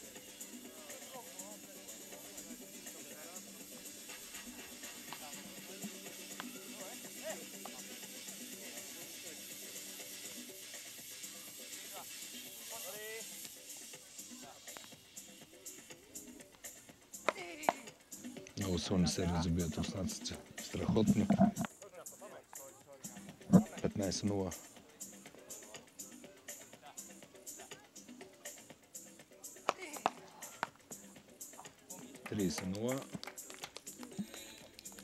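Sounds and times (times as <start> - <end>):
music over loudspeakers: 18.5 - 21.7, 23.4 - 24.5
voices: 18.6 - 24.6.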